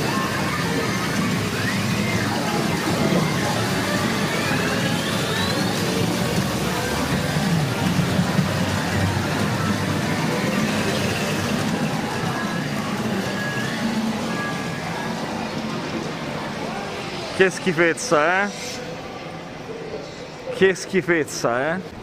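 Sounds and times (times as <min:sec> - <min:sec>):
rising electronic tones: 0:00.0 - 0:17.4
gaming machines electronic music: 0:00.0 - 0:17.8.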